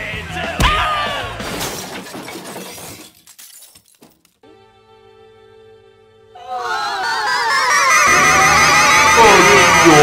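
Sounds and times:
glass shattering: 1.4s - 4.4s
glass shards tinkling: 1.8s - 4.3s.

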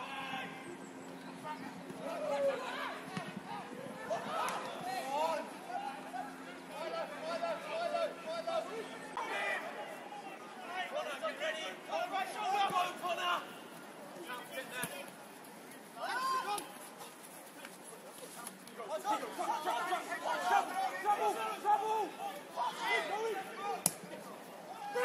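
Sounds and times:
voices chattering and calling out: 0.0s - 25.0s.

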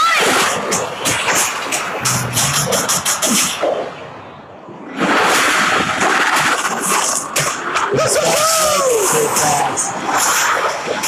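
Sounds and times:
action sound effects and hits: 2.0s - 3.9s.

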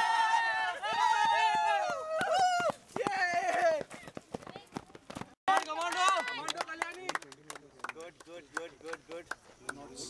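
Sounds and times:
young people yelling: 0.0s - 3.8s.

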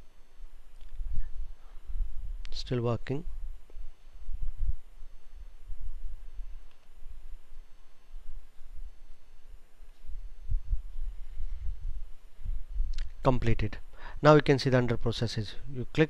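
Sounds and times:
low microphone rumble: 0.0s - 2.6s, 3.2s - 13.9s.

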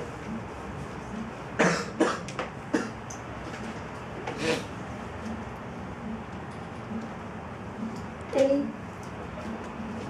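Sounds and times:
woman coughing into microphone: 1.6s - 3.0s.

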